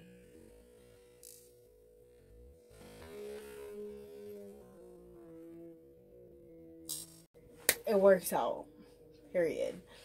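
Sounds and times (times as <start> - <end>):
electronic background music: 0.0 - 10.0.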